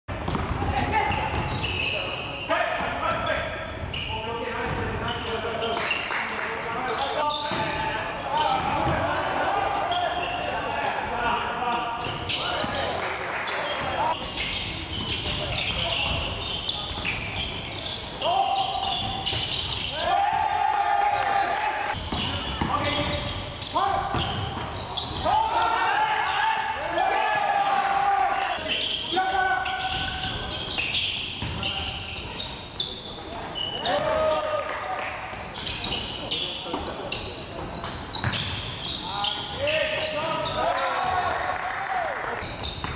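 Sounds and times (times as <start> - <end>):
players shouting: 19.8 - 22.0, 25.2 - 30.3.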